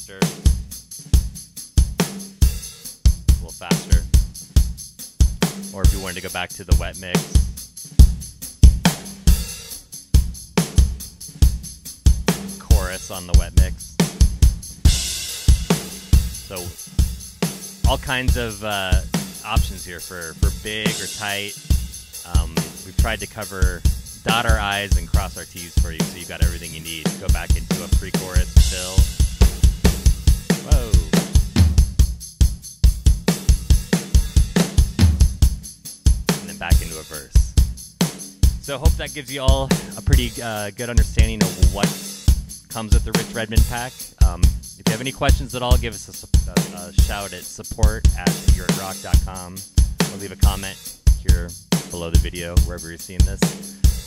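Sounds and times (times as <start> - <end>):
drum kit groove: 0.0 - 54.0.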